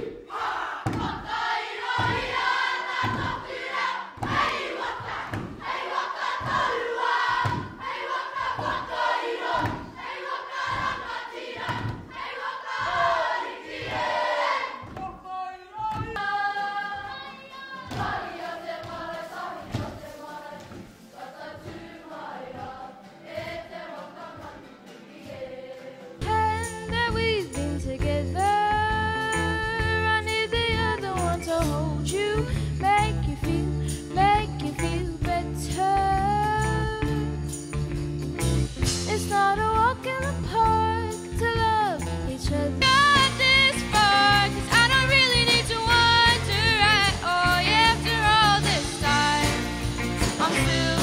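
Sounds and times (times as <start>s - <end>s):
many voices shouting in unison: 0.0s - 14.8s
group singing in unison: 0.0s - 15.0s, 15.9s - 26.2s, 42.9s - 51.0s
heavy thud: 0.8s - 3.6s, 4.2s - 5.8s, 6.4s - 7.9s, 10.6s - 13.2s.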